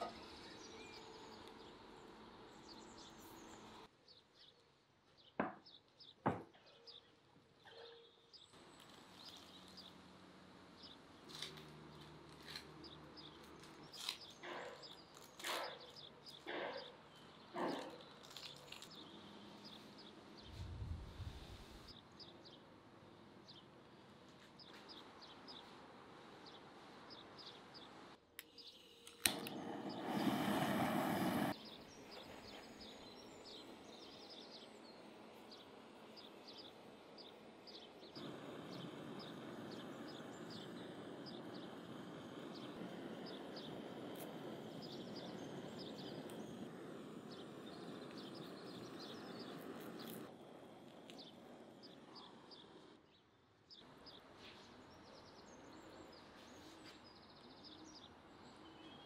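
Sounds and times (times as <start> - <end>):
small birds chirping: 0.0 - 10.1, 10.7 - 22.7, 24.4 - 59.0
steady background noise: 29.2 - 53.0
loud burst of noise: 29.3 - 31.6, 38.2 - 51.8.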